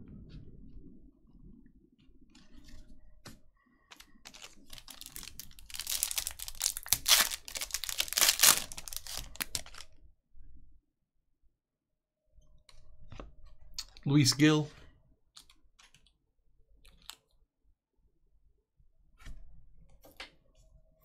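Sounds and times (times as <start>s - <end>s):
foil wrapper tearing and crinkling: 4.2s - 9.9s.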